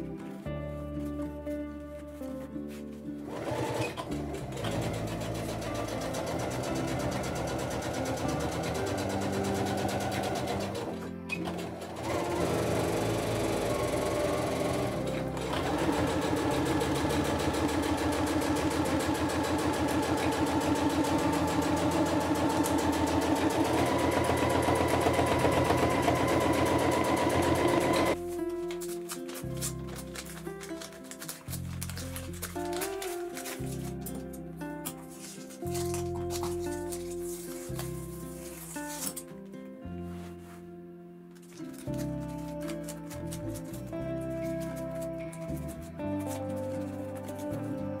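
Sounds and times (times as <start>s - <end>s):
electric sewing machine stitching: 3.3s - 28.2s.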